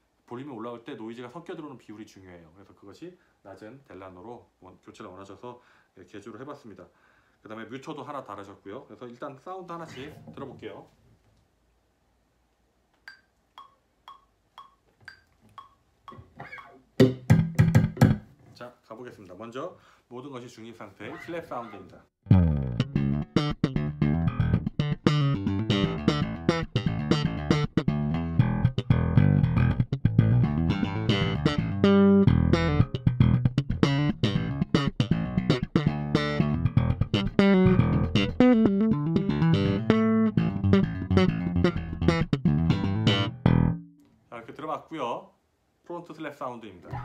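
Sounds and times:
bass guitar plucked notes: 0:16.4 - 0:18.2, 0:22.2 - 0:44.0.

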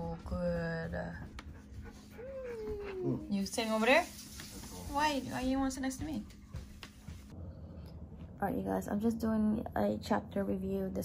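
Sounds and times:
dog whimpering: 0:01.9 - 0:03.5.

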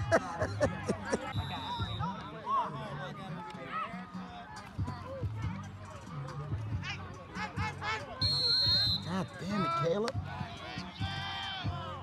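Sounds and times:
shrill referee whistle blast: 0:01.3 - 0:02.2, 0:08.2 - 0:09.2
voices shouting: 0:07.4 - 0:12.0.

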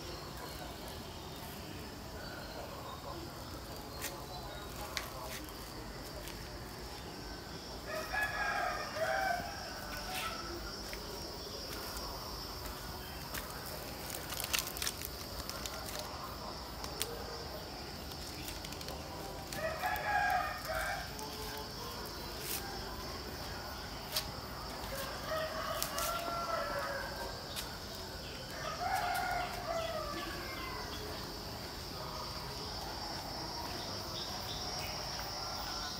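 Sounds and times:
rooster crowing: 0:07.9 - 0:10.5, 0:19.6 - 0:21.4, 0:24.9 - 0:27.4, 0:28.5 - 0:31.0.

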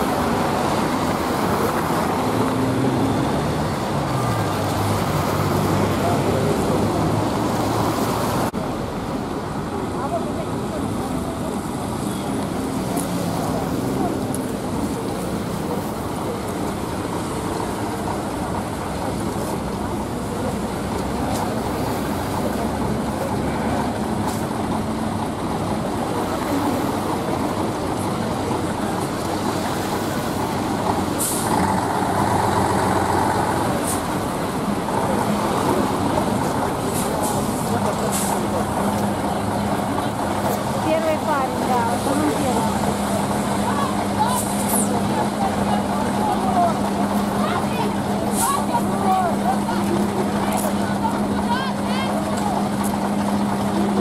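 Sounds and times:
large vehicle engines idling: 0:00.0 - 0:54.0
street traffic noise: 0:00.0 - 0:54.0.

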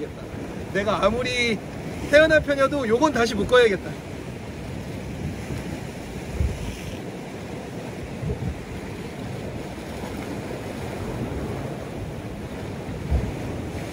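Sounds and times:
surf washing on rocky shore: 0:00.0 - 0:13.9
wind buffeting microphone: 0:00.0 - 0:13.9.

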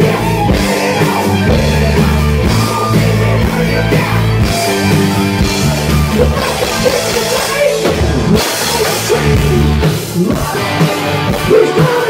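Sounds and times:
drum kit steady beat: 0:00.0 - 0:12.0
electric bass: 0:00.0 - 0:12.0
electric guitar: 0:00.0 - 0:12.0.

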